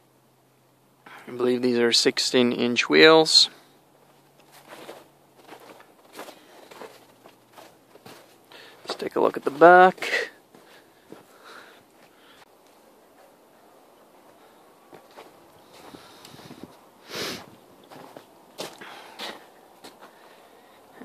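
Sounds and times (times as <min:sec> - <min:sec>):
footsteps on packed snow: 0:04.0 - 0:12.3, 0:14.2 - 0:20.3.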